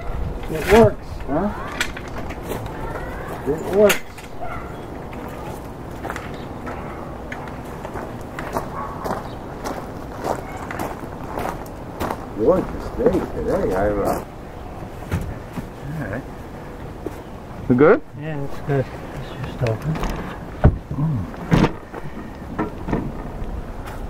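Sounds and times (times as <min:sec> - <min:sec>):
indistinct voices: 0:00.0 - 0:07.7, 0:17.6 - 0:22.8.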